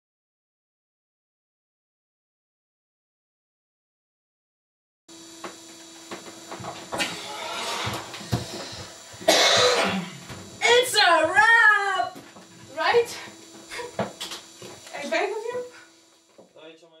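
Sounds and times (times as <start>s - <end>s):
cough-like burst: 9.2s - 10.3s.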